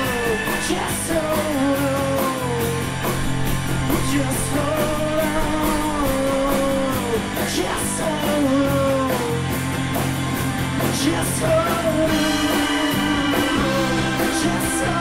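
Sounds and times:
bending electric guitar melody: 0.0s - 15.0s
live rock band playing: 0.0s - 15.0s.

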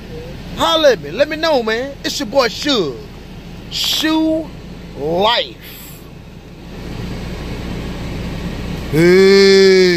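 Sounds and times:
low rumble inside truck cab: 0.0s - 9.9s.

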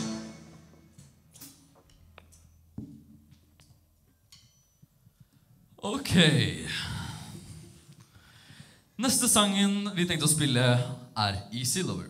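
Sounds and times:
rock band playing: 0.0s - 0.9s.

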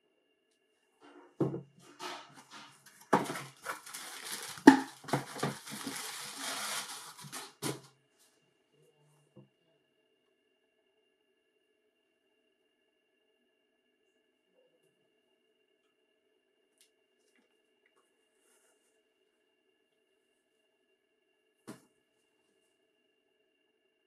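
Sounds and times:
tissue paper rustling: 3.0s - 7.9s.

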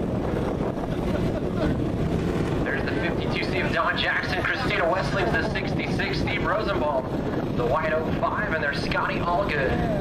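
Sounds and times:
distant racing engines rumble: 0.0s - 10.0s
wind on microphone: 0.0s - 10.0s
announcer speaking over loudspeaker: 2.7s - 7.0s, 7.6s - 10.0s.

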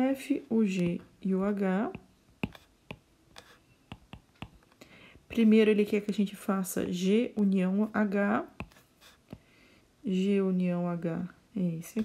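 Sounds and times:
stylus tapping on glass screen: 1.9s - 4.6s.

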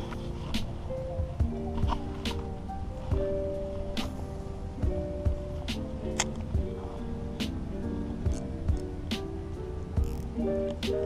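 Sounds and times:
hip-hop instrumental beat: 0.0s - 11.0s.

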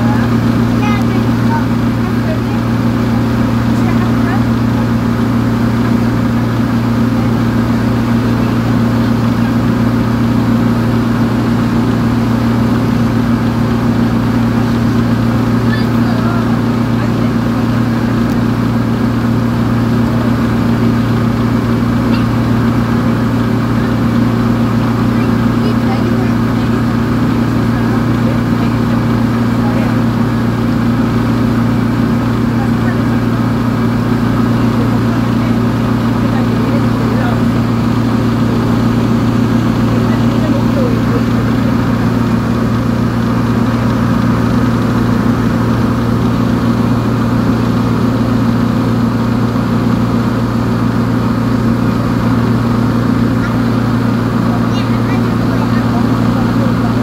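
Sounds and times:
boat engine droning: 0.0s - 57.0s
wake water rushing: 0.0s - 57.0s.

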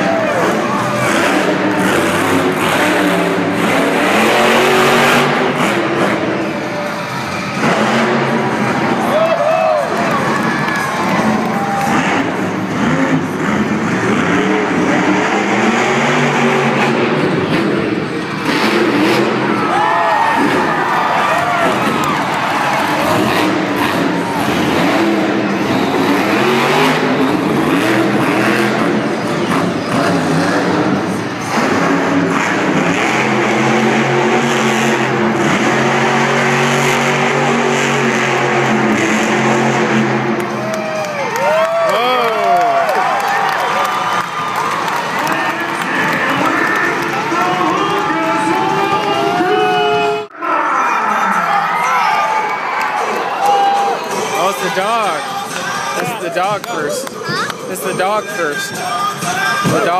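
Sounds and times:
monster truck engines revving: 0.0s - 59.9s.

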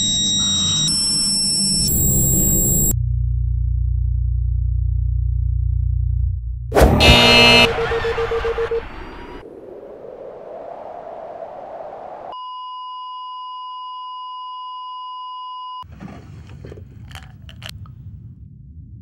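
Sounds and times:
steady test tone beep: 0.0s - 3.0s, 12.4s - 15.8s.

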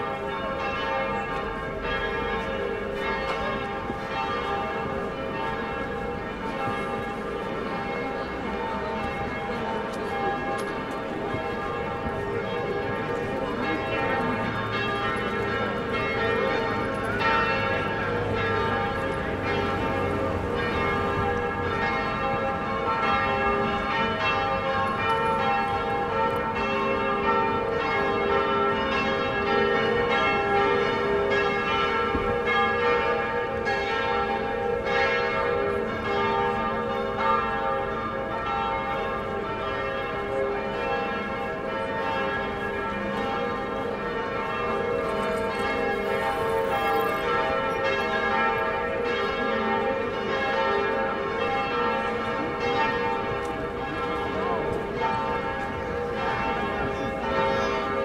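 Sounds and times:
church bells pealing: 0.0s - 58.0s.

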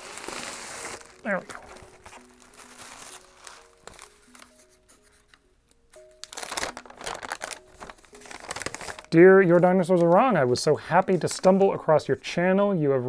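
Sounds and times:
paper rustling and crinkling: 0.0s - 11.8s
soft background music: 0.0s - 13.0s.

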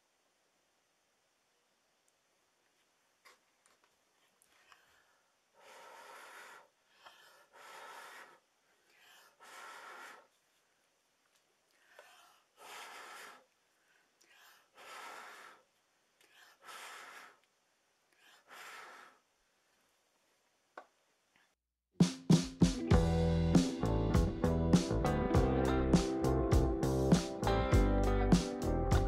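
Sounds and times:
soft breathing: 4.1s - 11.0s, 11.6s - 19.9s.

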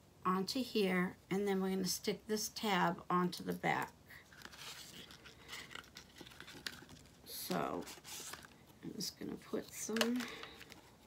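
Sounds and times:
card rustling and clicking: 4.2s - 8.8s, 9.6s - 11.0s.

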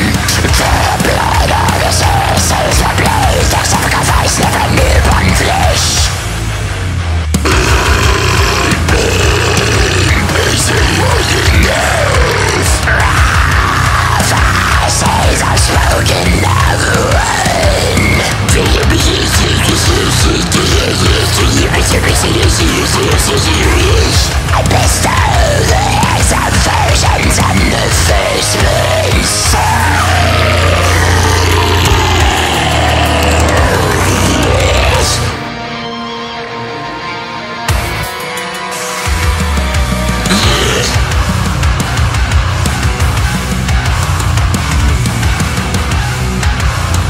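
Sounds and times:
harsh screamed vocal: 0.0s - 6.2s, 7.4s - 35.5s, 40.1s - 47.0s
distorted guitar and bass drone: 0.0s - 47.0s
heavy metal music: 0.0s - 47.0s.

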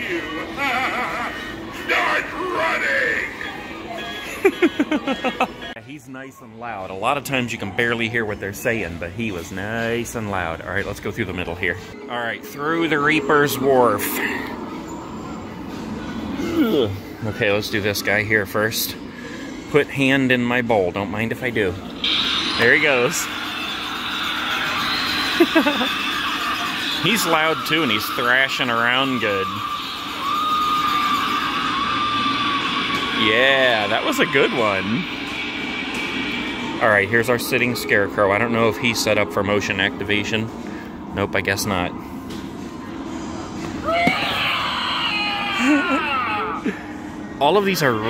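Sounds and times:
high-pitched shriek: 22.0s - 37.9s.

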